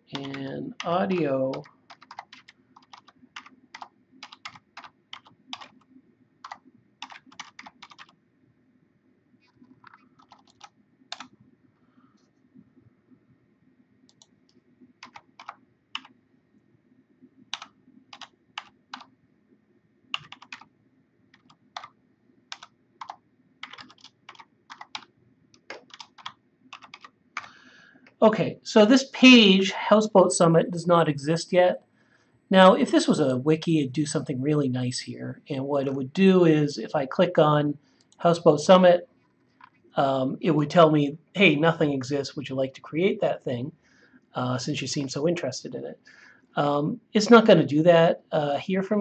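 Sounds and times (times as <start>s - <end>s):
keyboard typing: 0.0s - 8.2s, 9.4s - 11.4s, 14.0s - 16.2s, 17.5s - 19.1s, 20.1s - 20.7s, 21.3s - 28.2s.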